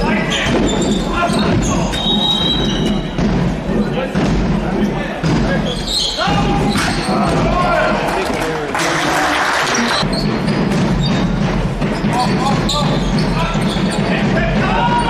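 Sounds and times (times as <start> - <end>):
players calling out: 0.0 - 3.2, 4.1 - 10.3, 11.8 - 15.0
ball bouncing on hall floor: 0.0 - 8.4, 10.0 - 15.0.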